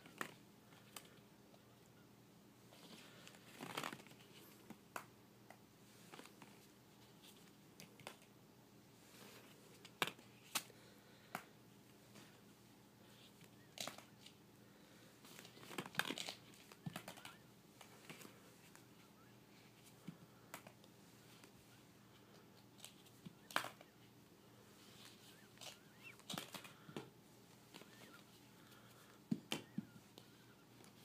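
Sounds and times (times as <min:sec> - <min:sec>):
plastic balls knocking together: 0:15.6 - 0:17.4.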